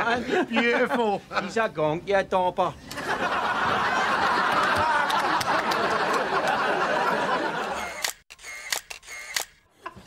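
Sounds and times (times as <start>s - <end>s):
people laughing: 0.0s - 1.7s, 2.8s - 8.0s
camera shutter clicks: 7.8s - 9.6s.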